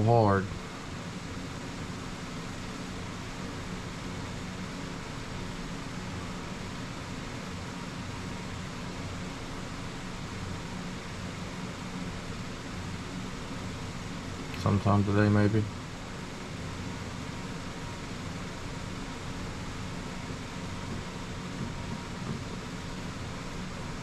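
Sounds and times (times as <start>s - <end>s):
fan hiss: 0.0s - 24.0s.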